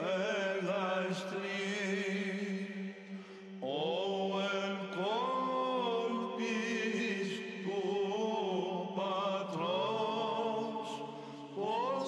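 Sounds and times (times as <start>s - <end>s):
choir chanting over drone: 3.6s - 12.0s.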